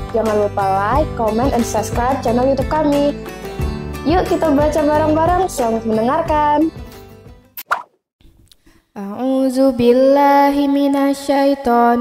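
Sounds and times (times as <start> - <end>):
background music: 0.0 - 7.6
short plop sound effect: 7.6 - 8.0.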